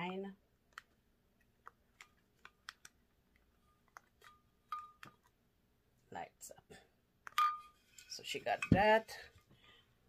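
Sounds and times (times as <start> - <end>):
faint clicks and taps: 0.0 - 5.4.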